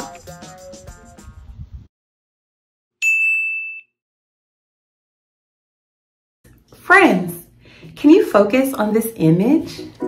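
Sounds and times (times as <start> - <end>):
bell-like ding: 3.0 - 4.0.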